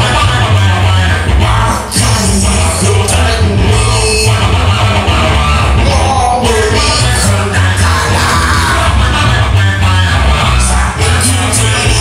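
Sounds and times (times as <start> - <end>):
electric guitar: 0.0 - 12.0
man singing: 0.0 - 12.0.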